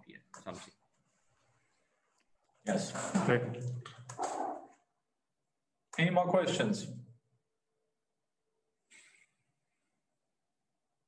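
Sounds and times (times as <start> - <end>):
man speaking: 0.0 - 0.8, 2.6 - 3.9, 6.0 - 7.1.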